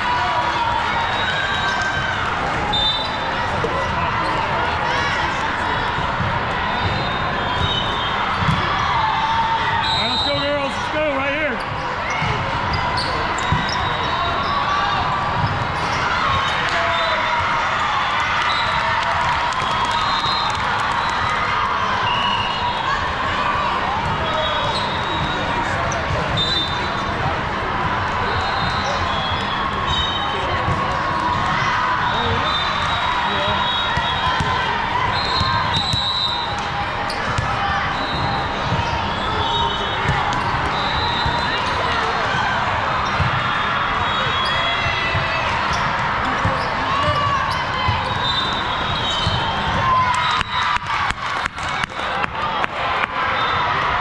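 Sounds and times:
din of many voices: 0:00.0 - 0:17.8.

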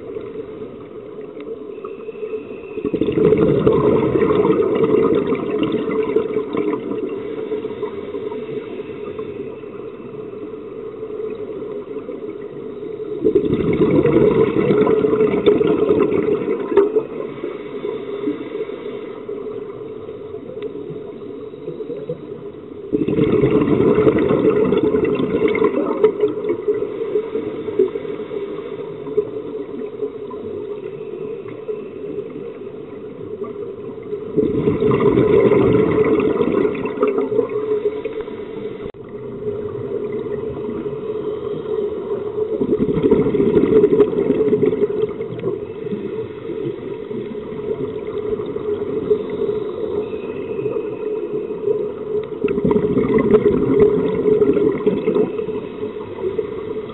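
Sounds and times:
steady regulator noise: 0:00.0 - 0:56.9
bubbling diver exhalations: 0:22.9 - 0:26.5.

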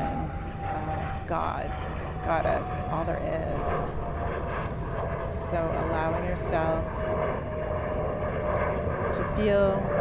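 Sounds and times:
distant motor drone: 0:00.0 - 0:10.0
low rumble: 0:00.0 - 0:10.0.

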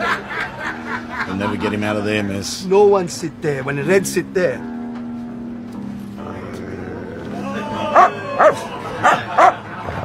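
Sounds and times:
dog barking: 0:08.0 - 0:09.6.

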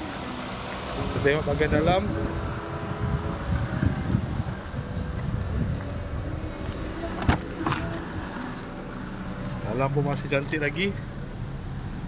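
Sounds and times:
car door latch clicks: 0:06.6 - 0:08.7.

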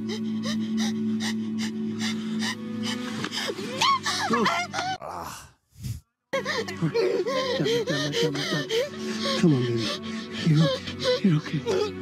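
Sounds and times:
dramatic film score drone: 0:00.0 - 0:05.0, 0:06.4 - 0:12.0.

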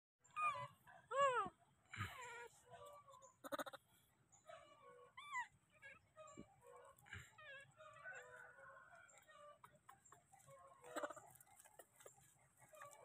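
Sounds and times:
baby monkey cooing: 0:03.2 - 0:03.8, 0:10.8 - 0:11.9.

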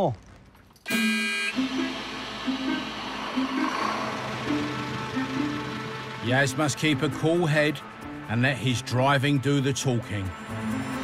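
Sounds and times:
horn toot: 0:00.9 - 0:04.4
slow melodic background music: 0:01.6 - 0:11.0.

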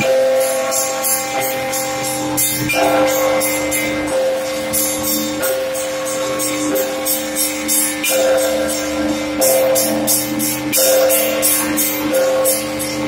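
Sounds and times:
deep church bell: 0:00.0 - 0:13.0
small church bells ringing: 0:00.0 - 0:13.0.

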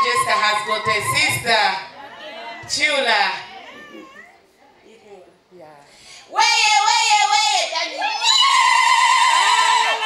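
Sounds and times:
faint voices: 0:01.8 - 0:05.9.

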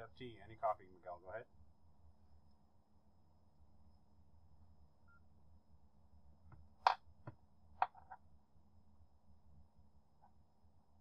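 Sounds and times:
low steady hum: 0:00.0 - 0:11.0
faint electronic beep: 0:05.0 - 0:05.3.

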